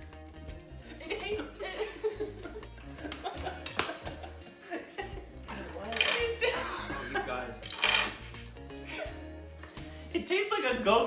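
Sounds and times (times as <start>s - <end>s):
group laughing: 0.8s - 7.6s
cutlery clinking on cups: 5.8s - 6.4s, 7.6s - 8.3s.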